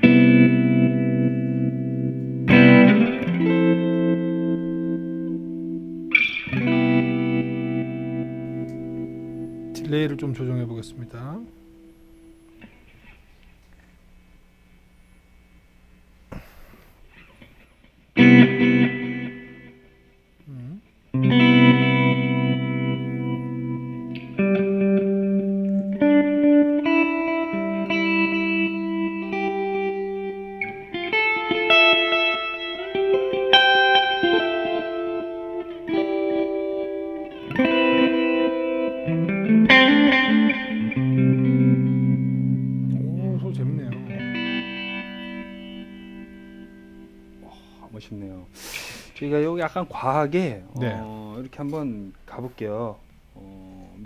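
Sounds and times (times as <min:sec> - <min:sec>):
clean electric guitar with tremolo: 0:00.0 - 0:13.9, 0:16.8 - 0:48.7.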